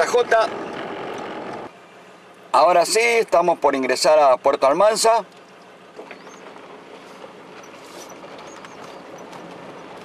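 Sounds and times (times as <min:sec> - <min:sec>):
gravel crackling: 0:00.0 - 0:01.7, 0:05.2 - 0:10.0
tyre and road noise: 0:00.0 - 0:03.6, 0:04.7 - 0:10.0
short high squeaks: 0:06.0 - 0:10.0.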